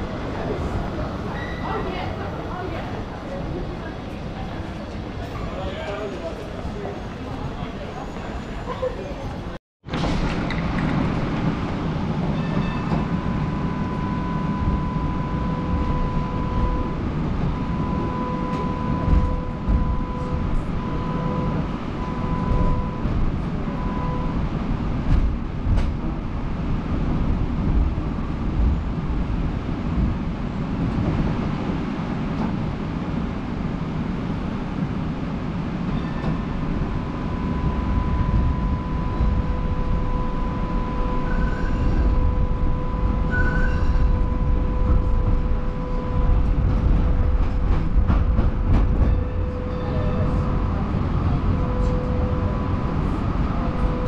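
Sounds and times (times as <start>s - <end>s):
tram rumbling on tracks: 0.0s - 54.0s.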